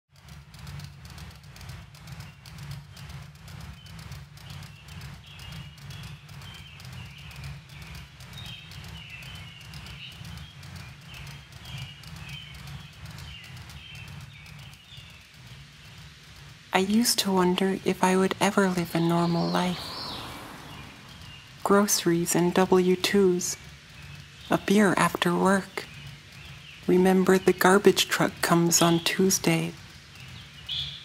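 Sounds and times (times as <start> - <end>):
ceiling fan humming and ticking: 0.1 - 31.0.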